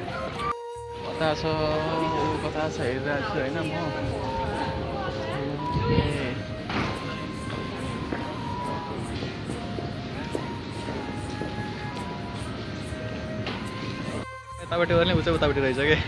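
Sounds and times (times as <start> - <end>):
slow music with long notes: 0.0 - 16.0
train and platform rumble: 0.0 - 16.0.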